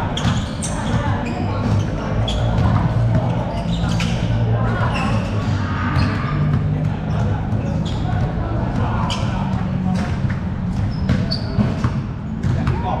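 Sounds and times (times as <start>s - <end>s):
people talking: 0.0s - 13.0s
basketball bouncing on hard court: 0.2s - 1.0s, 10.8s - 13.0s.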